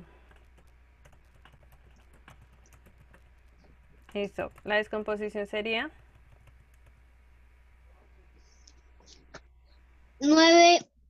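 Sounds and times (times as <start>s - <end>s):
typing on computer keyboard: 0.3s - 4.8s, 6.0s - 7.0s.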